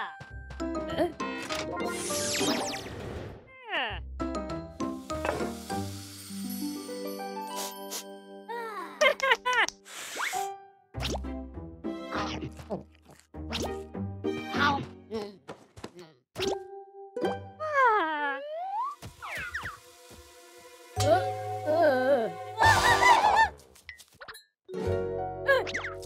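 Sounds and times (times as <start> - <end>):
playful cartoon music: 0.0 - 23.6, 24.7 - 26.0.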